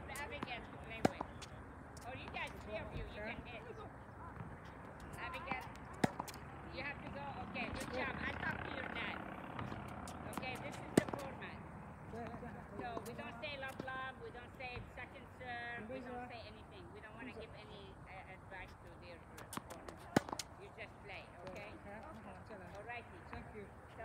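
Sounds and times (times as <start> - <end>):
tennis racket hitting ball: 0.0 - 3.3, 4.9 - 6.6, 9.4 - 11.6, 19.4 - 20.6
voices chattering: 0.0 - 24.0.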